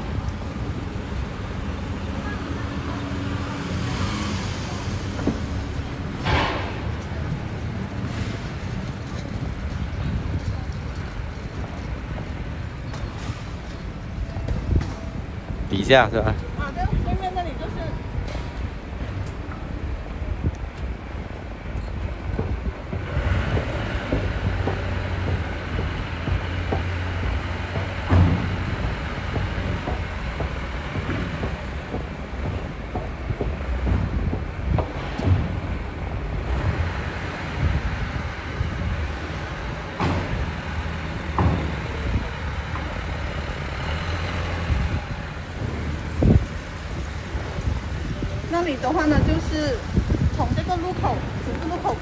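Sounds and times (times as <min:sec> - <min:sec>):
low rumble of city background: 0:00.0 - 0:52.0.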